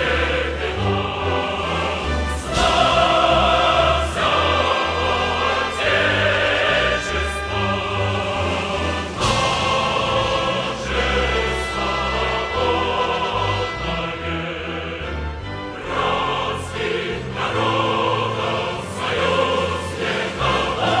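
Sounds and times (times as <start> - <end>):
choir singing held chords: 0.0 - 21.0.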